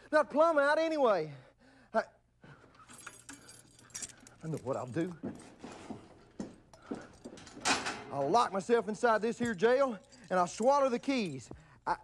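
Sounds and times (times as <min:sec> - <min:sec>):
faint jingling: 0:02.5 - 0:11.9
clothes rustling: 0:02.7 - 0:11.6.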